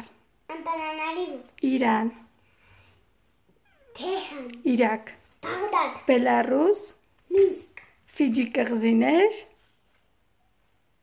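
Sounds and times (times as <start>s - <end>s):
young boy speaking: 0.5s - 1.6s, 3.9s - 4.6s, 5.4s - 6.1s, 7.3s - 7.8s.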